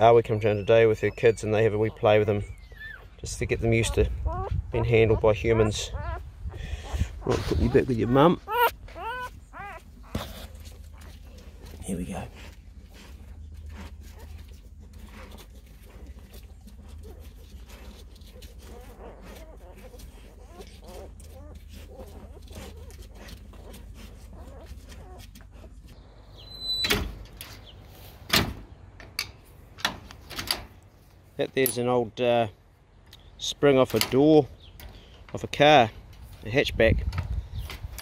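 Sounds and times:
puppies squeaking: 0.0s - 26.9s.

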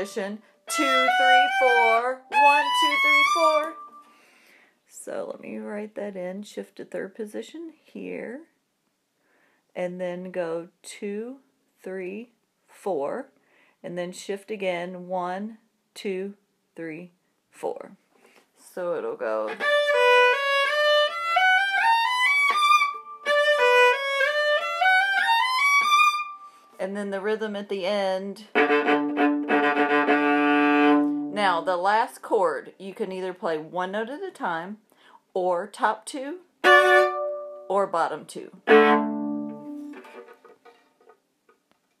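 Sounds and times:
viola and bow handling taps: 0.7s - 4.0s, 25.7s - 26.1s
solo viola rising run: 28.5s - 31.4s, 36.6s - 37.6s, 38.6s - 40.4s.

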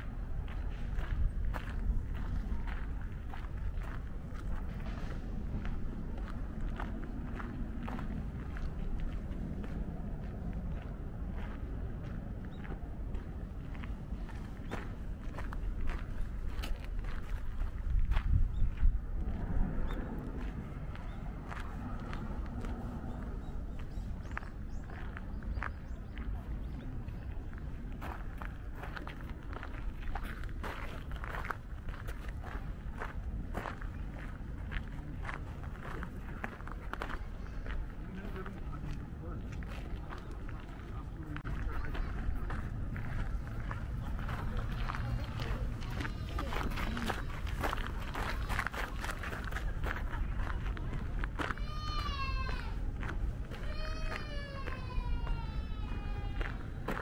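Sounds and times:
low rumble: 0.0s - 57.0s
footsteps on gravel: 0.4s - 19.4s, 20.3s - 57.0s.

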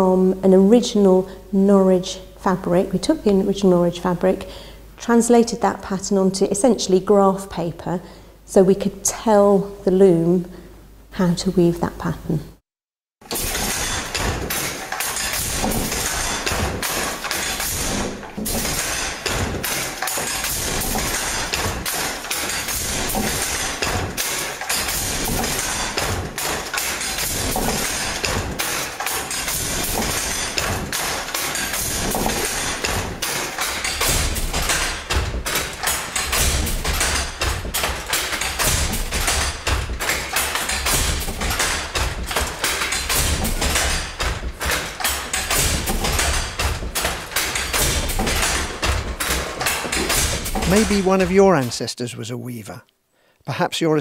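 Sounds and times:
loom wooden clatter: 13.2s - 51.8s.

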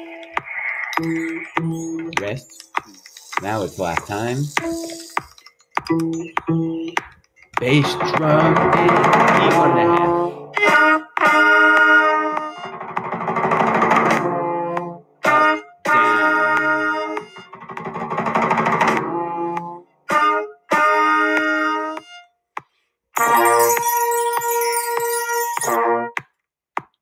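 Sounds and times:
band playing: 7.6s - 22.1s, 23.2s - 26.1s.

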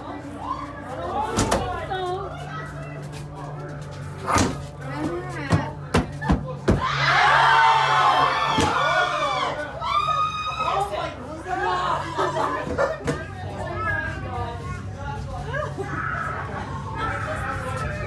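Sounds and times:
steady low soundtrack hum: 0.0s - 18.0s
people screaming and shouting: 0.2s - 1.7s, 6.1s - 12.8s, 15.4s - 18.0s.

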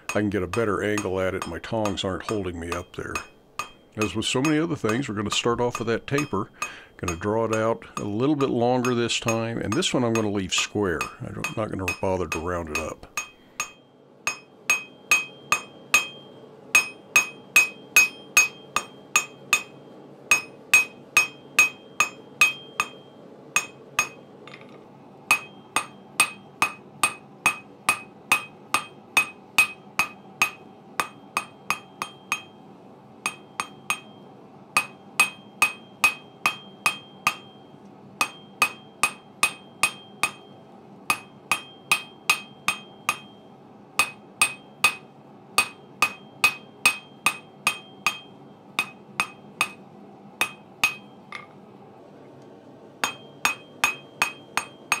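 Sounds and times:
hammer blows ringing on anvil: 0.1s - 24.7s, 25.3s - 51.5s, 53.0s - 55.0s.

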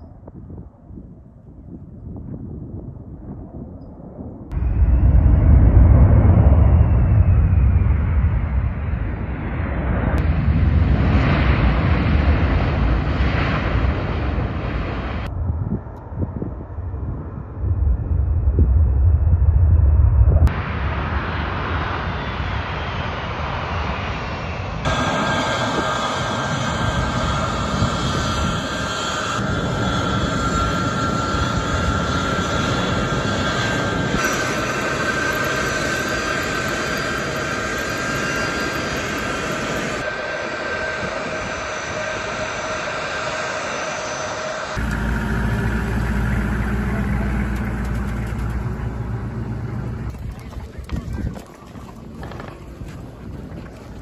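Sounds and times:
deep heavy rumble: 1.7s - 38.2s, 44.8s - 54.0s
jet engines whining: 20.4s - 54.0s.

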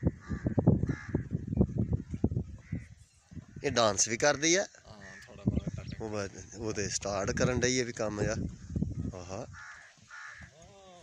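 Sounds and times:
crow cawing: 0.1s - 1.3s, 9.5s - 10.7s.

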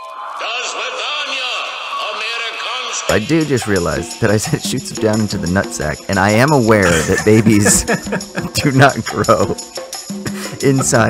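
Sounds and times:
man talking: 3.1s - 9.6s, 10.3s - 11.0s.

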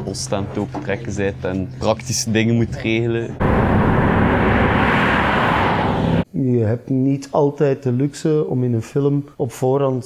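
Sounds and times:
loud steady rushing noise: 3.4s - 6.2s.

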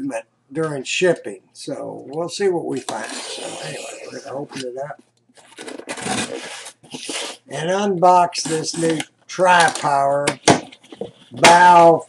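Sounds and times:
cardboard box scraping on wood: 5.6s - 7.4s.

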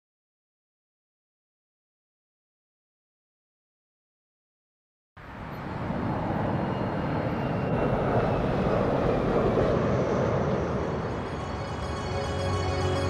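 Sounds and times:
rushing rumbling noise: 5.2s - 13.0s.

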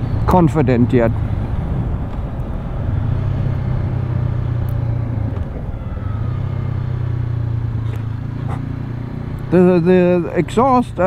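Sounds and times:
wind rush: 0.0s - 6.6s
motorcycle engine running: 0.0s - 11.0s.

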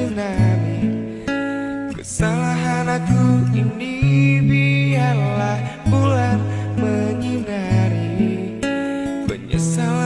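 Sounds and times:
acoustic guitar chords: 0.0s - 10.0s.

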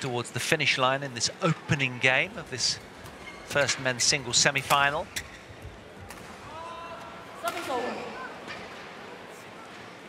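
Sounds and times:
indoor hall hum: 0.0s - 10.0s.

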